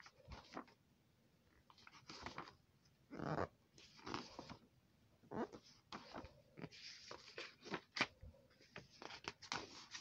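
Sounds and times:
book pages flipping: 0.0 - 0.8, 1.6 - 2.6, 3.3 - 4.6, 5.3 - 10.0.

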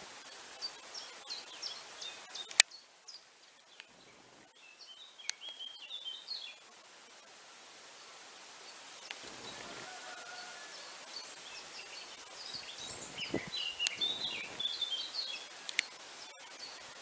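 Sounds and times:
songbird chirping: 0.6 - 6.7, 8.0 - 17.0.

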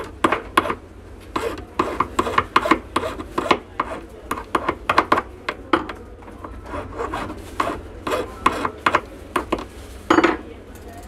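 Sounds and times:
scratchy scraping strokes: 6.6 - 8.8.

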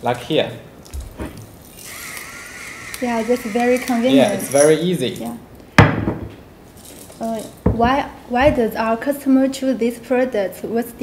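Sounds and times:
spice mill motor whining: 1.8 - 4.8.

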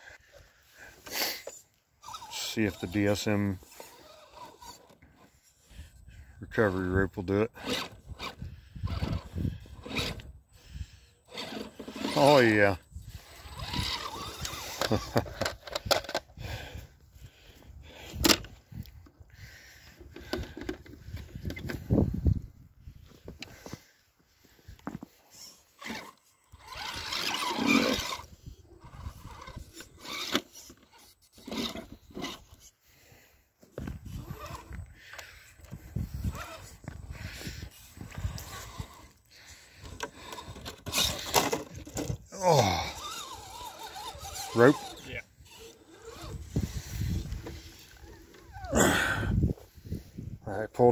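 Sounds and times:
electric motors whirring: 2.0 - 5.7, 7.5 - 16.2, 25.3 - 32.7, 33.8 - 49.8
tyres scraping over rock: 11.2 - 16.2, 24.8 - 32.7, 36.0 - 49.0.

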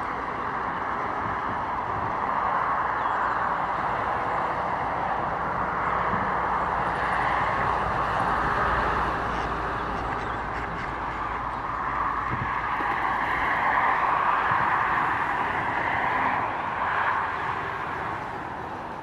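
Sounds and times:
distant road traffic: 0.0 - 19.0.

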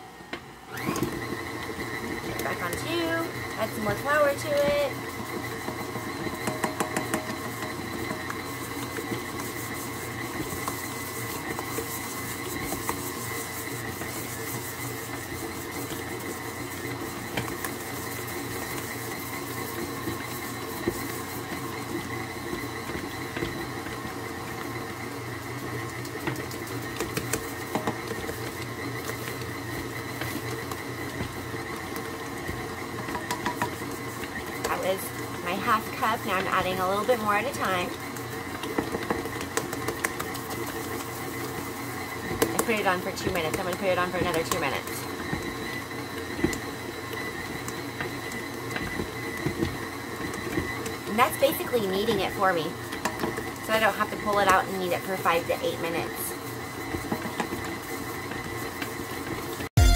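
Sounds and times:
stand mixer motor hum and whine: 0.0 - 59.9.

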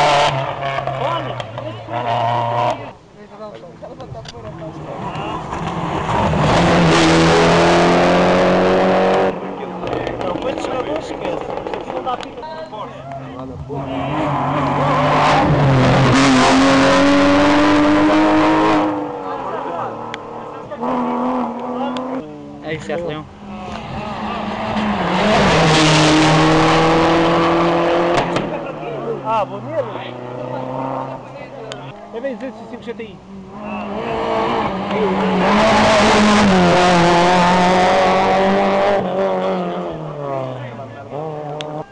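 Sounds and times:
rally cars passing at high revs: 0.0 - 3.0, 4.0 - 41.9.

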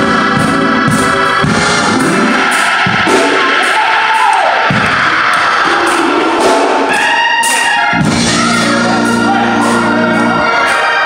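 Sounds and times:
church organ playing gospel: 0.0 - 11.0
congregation crowd noise: 0.0 - 11.0.

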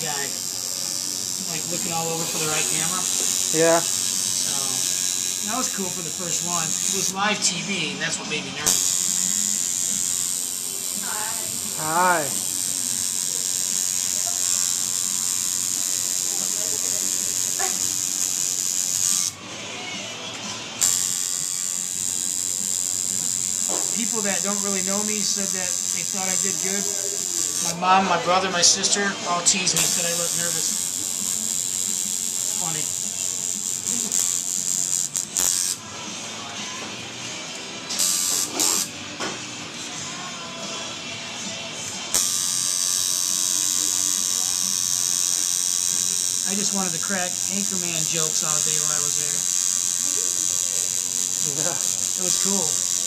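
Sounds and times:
tattoo machine buzzing: 0.0 - 53.0.

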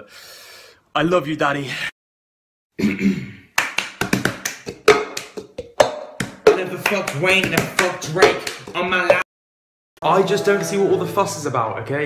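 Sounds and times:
hand claps: 3.6 - 8.9.

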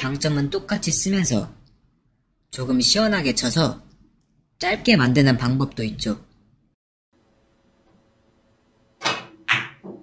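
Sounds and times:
billiard balls clacking: 9.0 - 10.0.

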